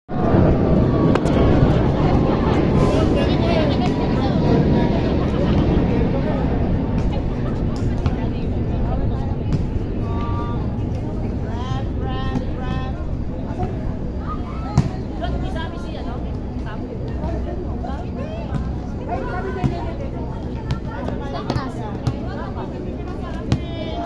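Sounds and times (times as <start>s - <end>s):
people chattering and calling out: 0.1s - 24.0s.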